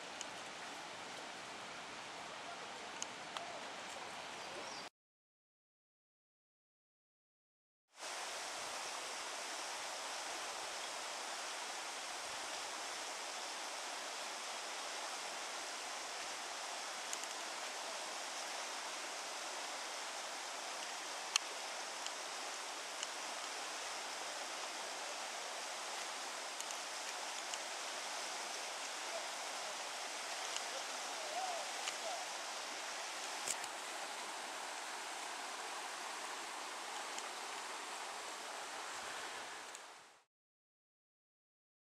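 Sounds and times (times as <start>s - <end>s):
river water running over rapids: 0.0s - 4.8s, 8.0s - 40.3s
faint clicks: 2.9s - 4.0s, 17.0s - 17.4s, 20.8s - 22.2s, 26.5s - 27.7s, 30.3s - 30.8s, 33.2s - 33.8s.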